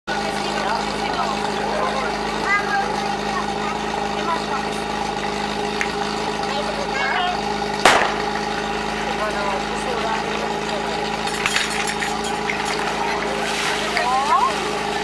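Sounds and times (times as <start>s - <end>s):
pump engine idling: 0.1s - 15.0s
sharp gunshot: 7.9s - 8.7s.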